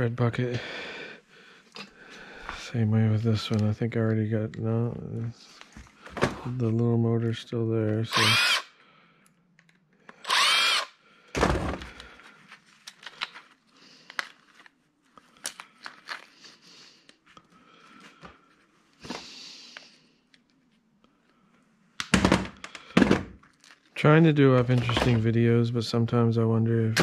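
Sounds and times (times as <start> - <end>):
cordless drill whining: 8.1 - 8.7, 10.1 - 11.0
heavy thunk: 11.4 - 11.9.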